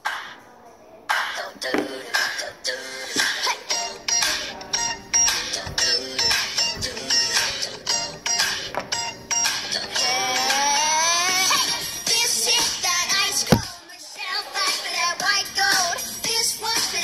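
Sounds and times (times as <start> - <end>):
boy singing: 1.1 - 8.4, 9.6 - 17.0.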